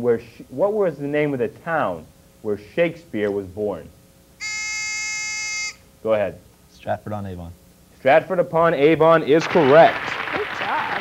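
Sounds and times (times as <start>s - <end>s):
electronic buzzer: 4.4s - 5.9s.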